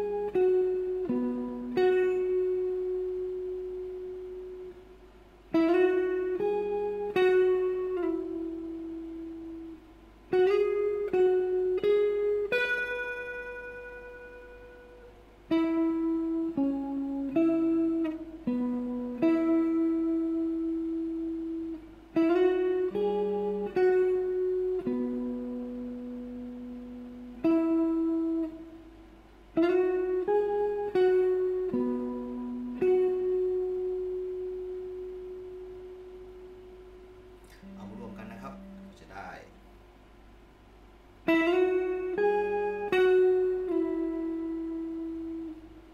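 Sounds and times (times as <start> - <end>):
clean electric guitar melody: 0.0 - 39.7, 41.2 - 45.9.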